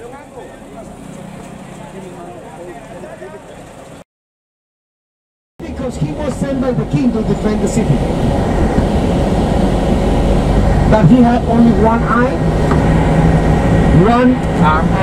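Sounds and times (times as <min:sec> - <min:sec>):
people talking: 0:00.0 - 0:01.0, 0:01.7 - 0:03.7, 0:05.6 - 0:08.1, 0:10.9 - 0:12.4, 0:13.9 - 0:15.0
bus rumble from inside: 0:00.0 - 0:04.0, 0:05.6 - 0:15.0.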